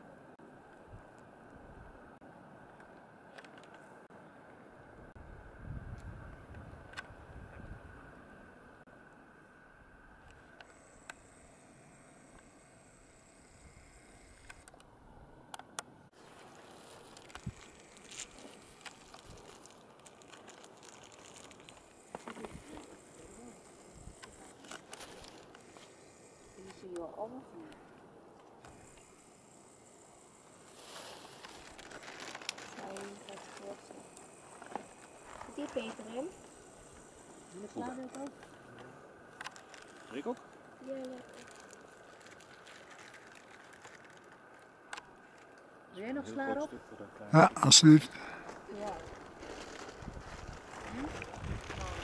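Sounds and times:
wind rumble on microphone: 5.1 - 8.2, 49.8 - 52.0.

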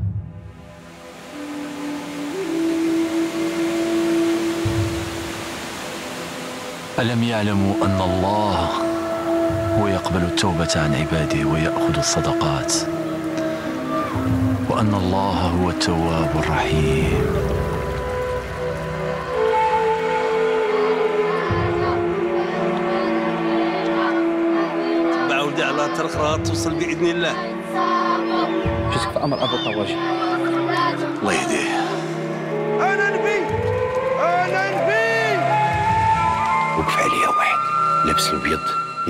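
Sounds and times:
music with long held notes: 0.0 - 39.0
rain falling: 0.8 - 24.6, 30.3 - 39.0.

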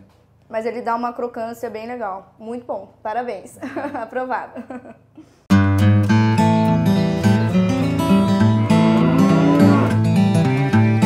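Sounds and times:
strummed acoustic guitar music: 5.5 - 11.0
cow mooing: 8.0 - 11.0.

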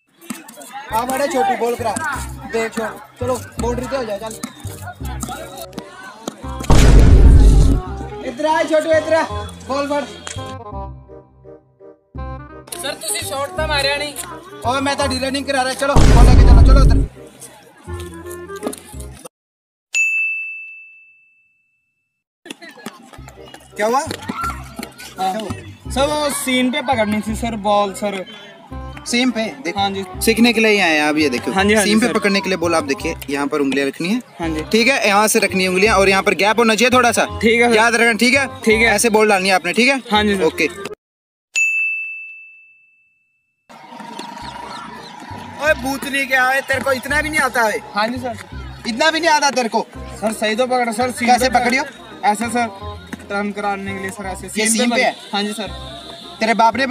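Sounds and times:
outdoor background noise: 0.0 - 10.6, 22.5 - 41.0
background music: 0.9 - 19.2, 28.7 - 40.9, 44.4 - 56.9
bright ding ringing: 20.0 - 21.6, 41.6 - 43.2.

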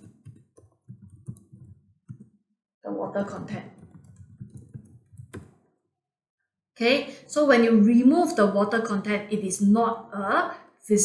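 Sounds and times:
computer keyboard typing: 0.0 - 2.3, 3.4 - 5.6.

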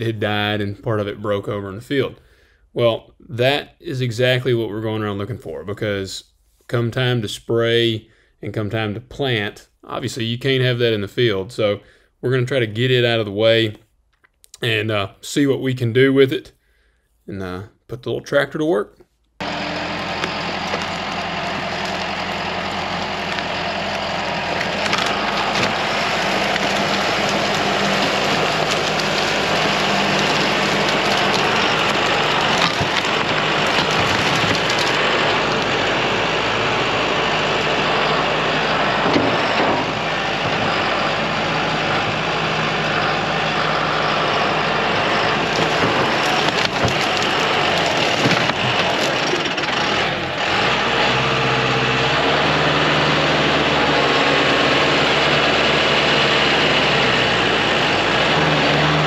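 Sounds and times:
tractor diesel engine under load: 0.0 - 6.1, 19.4 - 59.0
wood cracking and knocking: 20.0 - 35.9, 39.0 - 40.8, 45.4 - 50.0.

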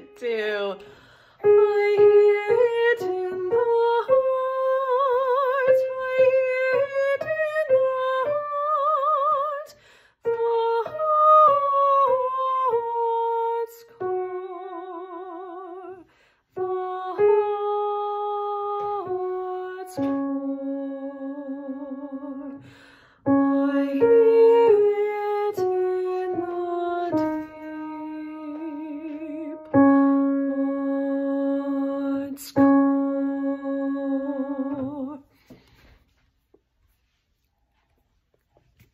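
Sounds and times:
woman singing: 0.0 - 22.7, 23.3 - 35.4
quick breath: 0.8 - 1.4, 9.8 - 10.2, 22.6 - 23.2
woman breathing: 0.8 - 1.5, 9.7 - 10.2, 16.0 - 16.6, 22.6 - 23.3, 35.3 - 36.2.

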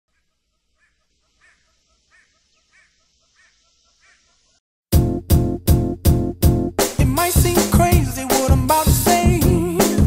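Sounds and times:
faint bird calls: 0.1 - 4.6.

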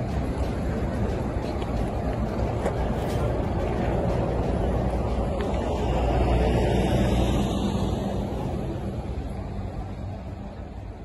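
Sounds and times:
people talking: 0.0 - 11.0
vehicle engines rumbling: 0.0 - 11.0.

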